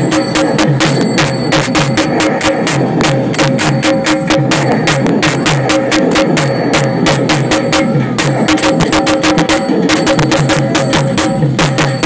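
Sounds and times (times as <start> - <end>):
fast driving drum strokes: 0.0 - 12.0
held melody line: 0.0 - 12.0.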